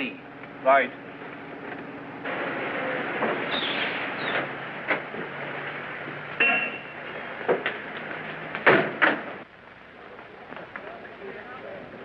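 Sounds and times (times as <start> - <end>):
car engine and road noise: 0.3 - 9.9.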